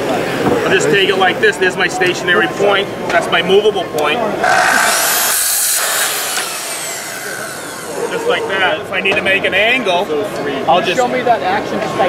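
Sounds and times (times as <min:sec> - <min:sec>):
motor spinning down whine: 0:04.4 - 0:08.9
circular saw cutting wood: 0:04.4 - 0:09.1.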